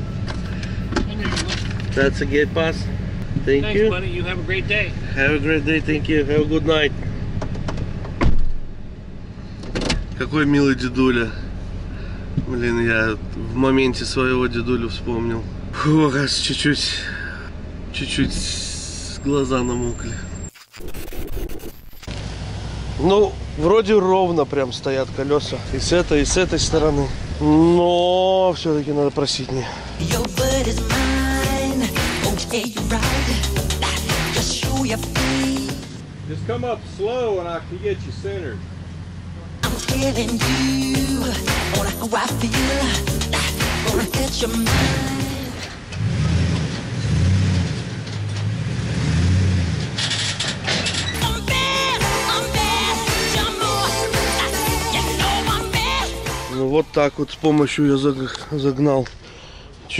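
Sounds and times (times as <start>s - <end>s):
low engine hum: 0.0s - 20.5s
glitch static with sharp clicks: 20.4s - 22.2s
truck engine revving: 30.0s - 56.7s.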